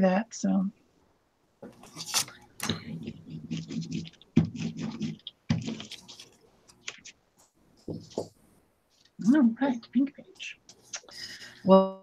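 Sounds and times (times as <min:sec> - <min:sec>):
paper and card rustling: 0:01.7 - 0:09.2.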